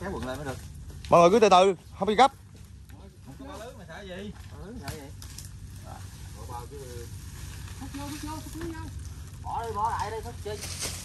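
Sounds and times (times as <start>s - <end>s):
dry palm fronds crackling: 0.0s - 11.0s.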